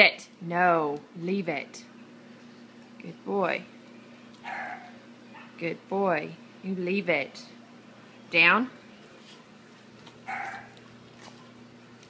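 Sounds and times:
puppy vocal sound: 4.4 - 5.6, 10.2 - 10.8.

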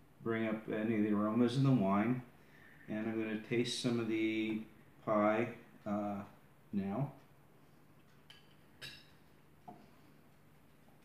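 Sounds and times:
tableware clinks: 8.3 - 9.3.

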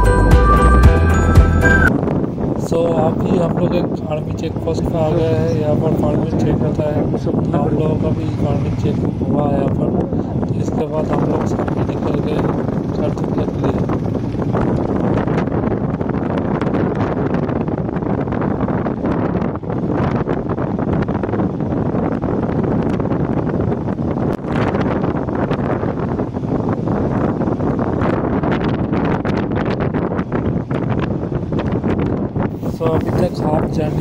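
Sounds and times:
wind buffeting microphone: 1.2 - 34.0
motorcycle running: 4.1 - 34.0.

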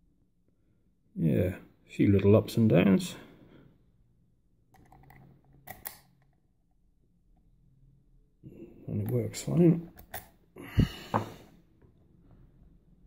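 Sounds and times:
metallic lock handling clicks: 4.8 - 6.3, 9.9 - 10.3.

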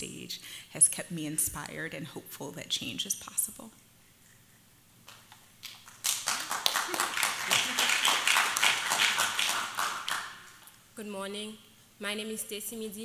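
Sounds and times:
audience applause: 5.8 - 10.6.

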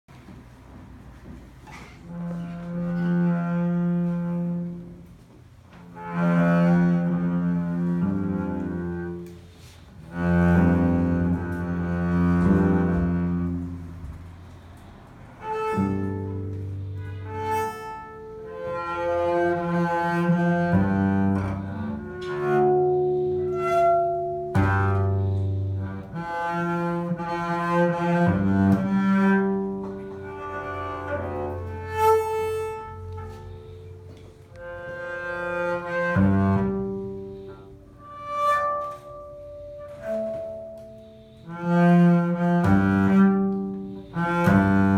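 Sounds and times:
bowed double bass notes: 0.2 - 44.9.

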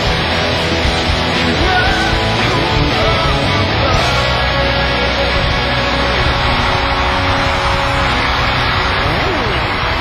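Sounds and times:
distorted electric guitar rock music: 0.0 - 10.0.

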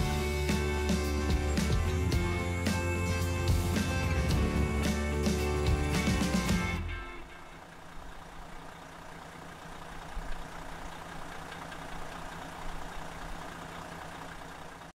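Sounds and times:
low engine hum: 0.0 - 15.0.

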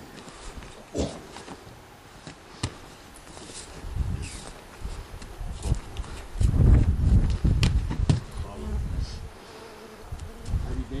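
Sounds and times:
flying insect buzzing: 3.6 - 11.0.

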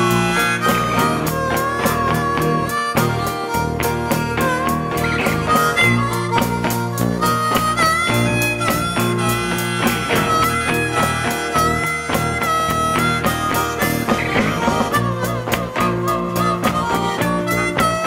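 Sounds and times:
bass: 0.0 - 18.0
blues harmonica solo: 0.0 - 18.0
electric guitar: 0.0 - 18.0
strummed acoustic guitars: 0.0 - 18.0.

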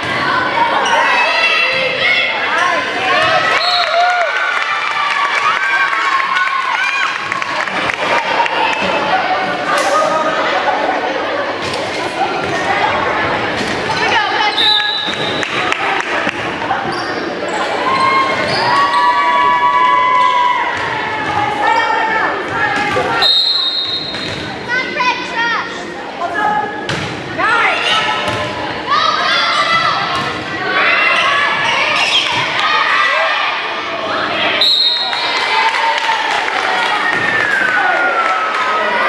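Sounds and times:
voices and calls echoing in hall: 0.0 - 39.0
referee's whistle: 14.5 - 15.2, 23.2 - 24.2, 34.6 - 35.3.

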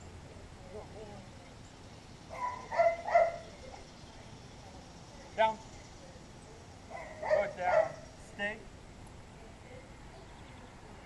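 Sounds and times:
dog barking: 2.3 - 3.5, 6.9 - 8.0.

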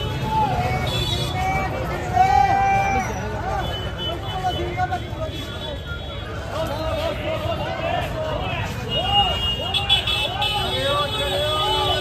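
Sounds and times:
crowd voices: 0.0 - 12.0
street noise: 0.0 - 12.0.

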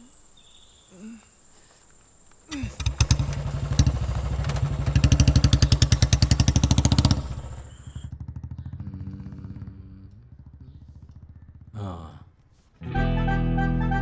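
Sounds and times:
motorcycle engine pulling away: 2.5 - 14.0.

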